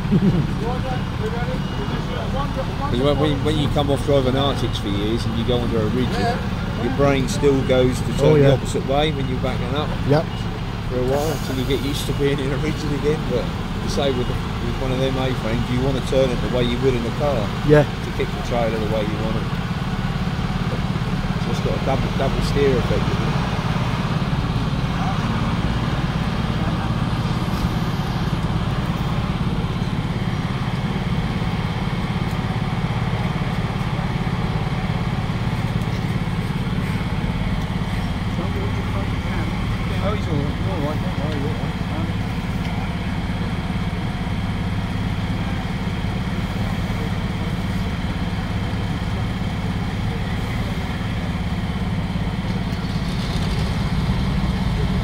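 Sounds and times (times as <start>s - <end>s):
truck diesel engine running: 0.0s - 55.0s.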